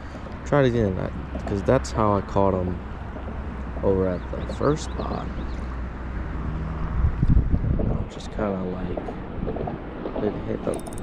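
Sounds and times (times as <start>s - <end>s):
wind buffeting microphone: 6.8s - 11.0s.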